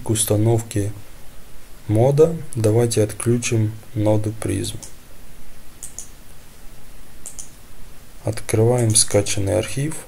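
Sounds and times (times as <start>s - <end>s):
faint microphone hum: 0.0s - 10.0s
computer mouse clicks: 5.8s - 6.2s, 7.2s - 7.6s.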